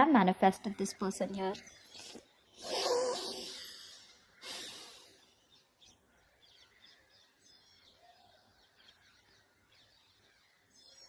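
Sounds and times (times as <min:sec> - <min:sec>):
soft breathy vocal sound: 0:01.9 - 0:05.4.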